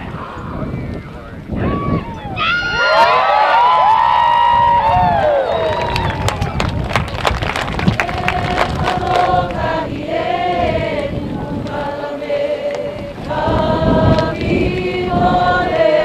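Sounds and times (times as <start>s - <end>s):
group chanting: 8.0s - 16.0s.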